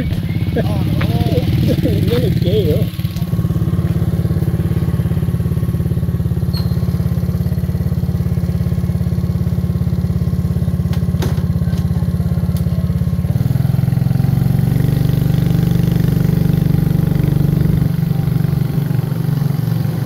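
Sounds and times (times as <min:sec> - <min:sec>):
small motorcycle engine running: 0:00.0 - 0:20.0.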